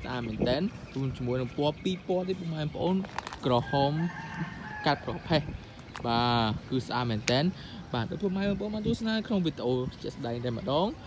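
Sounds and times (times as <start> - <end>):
rooster crowing: 3.6 - 5.4.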